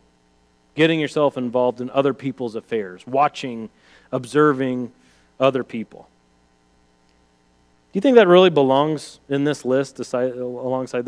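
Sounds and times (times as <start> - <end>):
faint electrical hum: 0.0 - 11.0
man speaking: 0.8 - 6.1, 8.0 - 11.0.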